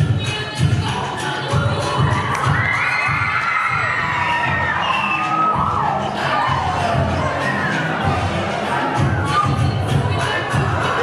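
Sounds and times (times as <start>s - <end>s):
dance song beat: 0.0s - 11.0s
crowd screaming and cheering: 1.1s - 11.0s.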